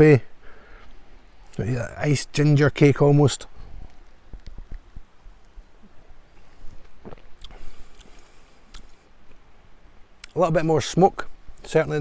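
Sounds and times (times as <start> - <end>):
person sipping and swallowing: 7.1 - 9.0.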